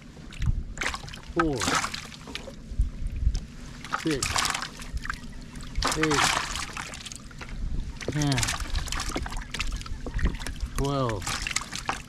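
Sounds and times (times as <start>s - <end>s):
water splashing and dripping: 0.3s - 2.6s, 3.8s - 12.0s
wind buffeting microphone: 2.6s - 3.7s, 7.5s - 10.8s.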